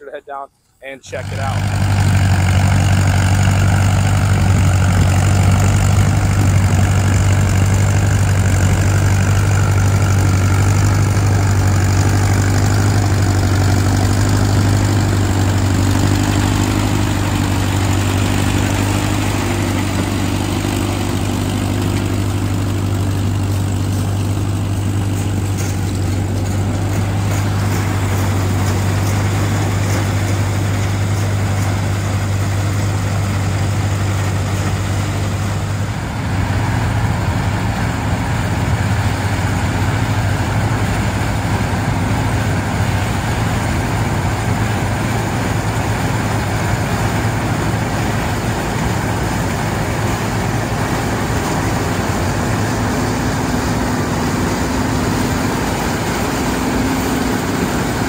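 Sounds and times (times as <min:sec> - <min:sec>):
tractor engine running: 0:00.0 - 0:58.0
machinery clatter: 0:01.0 - 0:58.0.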